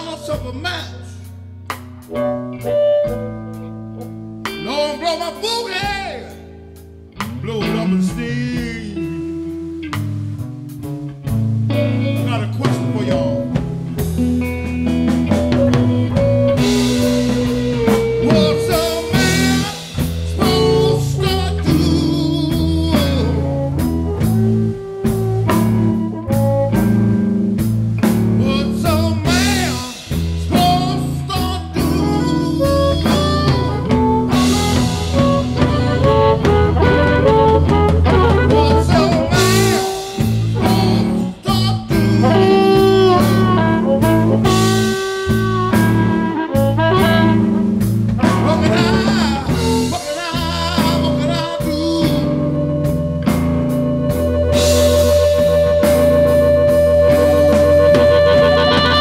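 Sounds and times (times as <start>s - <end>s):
bending lead guitar line: 0.0s - 59.0s
drum kit groove: 0.0s - 59.0s
electric bass: 0.0s - 59.0s.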